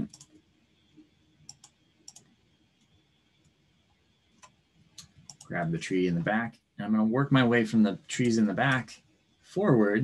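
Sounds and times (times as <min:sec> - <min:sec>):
mouse and keyboard clicks: 0:01.5 - 0:02.3.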